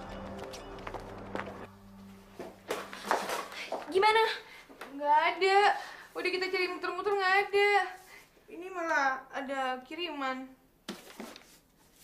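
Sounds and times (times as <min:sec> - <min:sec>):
speech: 0:03.9 - 0:10.6.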